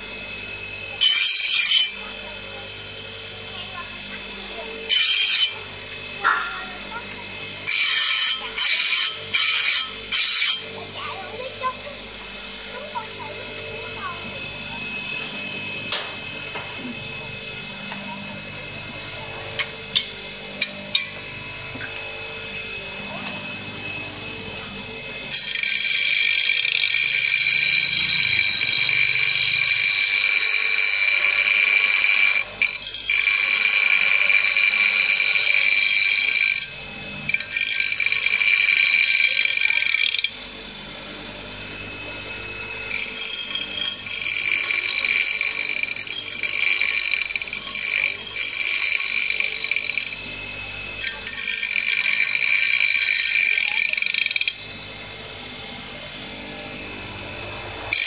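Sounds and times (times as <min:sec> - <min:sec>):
bench grinder screeching on steel: 0:00.9 - 0:02.1, 0:04.8 - 0:06.5, 0:07.6 - 0:10.8, 0:25.3 - 0:40.7, 0:42.9 - 0:50.4, 0:51.0 - 0:54.9, 0:57.3 - 0:58.0.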